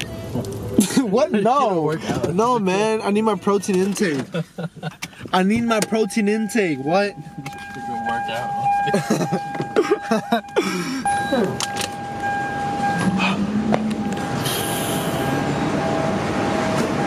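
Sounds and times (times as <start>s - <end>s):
laughter: 3.3s - 5.2s, 8.9s - 10.7s
high electronic tone: 5.4s - 16.8s.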